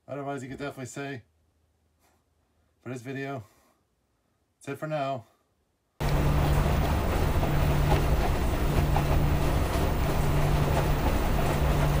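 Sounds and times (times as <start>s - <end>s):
low motor hum: 6.0s - 12.0s
water sloshing in washing machine: 6.0s - 12.0s.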